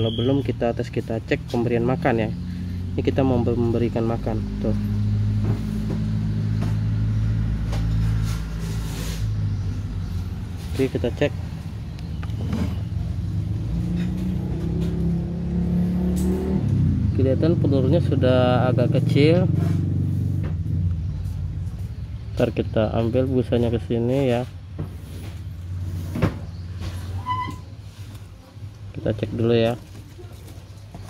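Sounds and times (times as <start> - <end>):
vehicle engine humming: 0.0 - 31.0.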